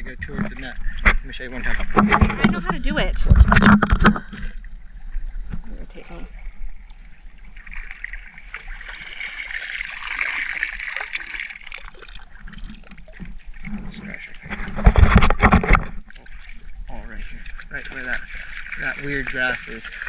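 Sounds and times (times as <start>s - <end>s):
water sloshing and splashing: 0.0s - 20.0s.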